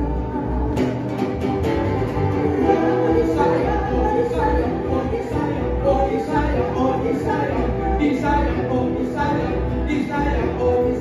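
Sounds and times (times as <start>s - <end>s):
strummed acoustic guitar: 0.0s - 11.0s
violin: 0.0s - 11.0s
woman and man singing together: 0.0s - 11.0s.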